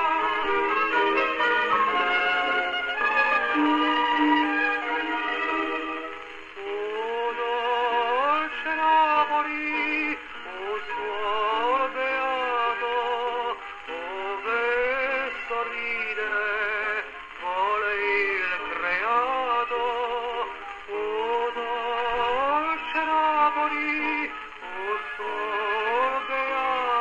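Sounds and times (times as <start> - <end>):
gramophone record of person singing: 0.0 - 27.0.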